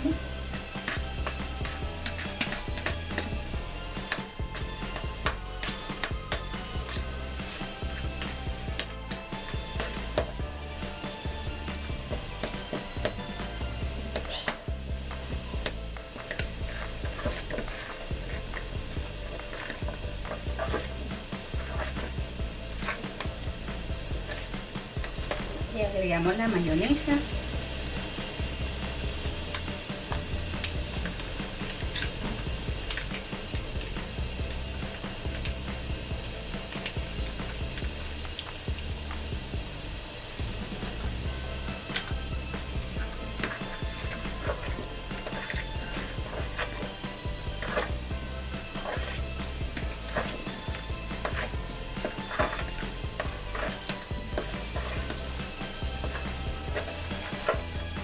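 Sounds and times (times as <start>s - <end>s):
background music with bass: 0.0s - 58.0s
spoon scraping plastic bowl: 11.9s - 25.7s, 40.8s - 58.0s.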